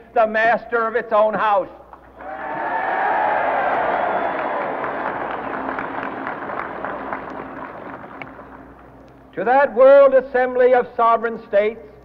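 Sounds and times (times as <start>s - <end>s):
crowd applauding: 2.2s - 9.0s.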